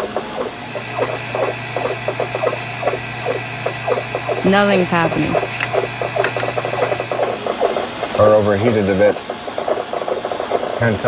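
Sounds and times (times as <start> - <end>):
electrical hum: 0.4 - 7.7
thin high whine: 0.5 - 7.5
rapid chattering clicks: 0.5 - 7.6.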